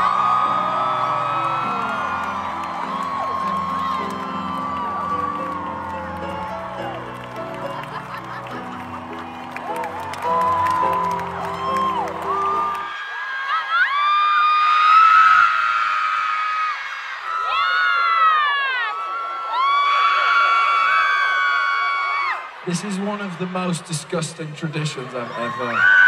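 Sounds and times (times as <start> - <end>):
crowd screaming high-pitched shrieks: 0.0 - 22.8, 25.0 - 26.0
crowd noise: 0.0 - 26.0.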